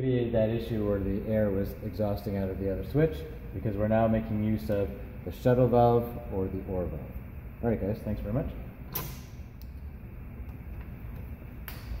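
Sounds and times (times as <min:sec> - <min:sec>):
sharp click: 0:08.9 - 0:09.8.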